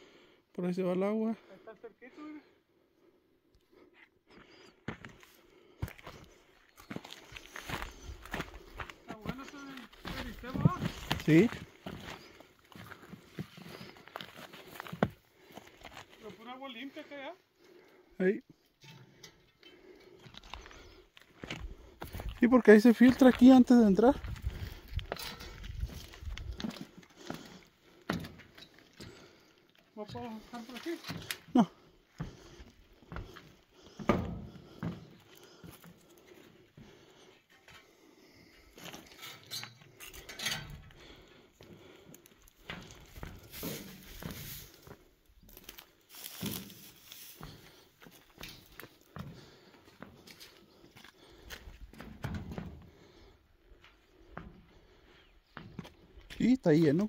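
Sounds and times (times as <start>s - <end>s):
footsteps on rocky ground: 4.3s - 17.0s, 20.2s - 39.2s, 40.7s - 57.0s.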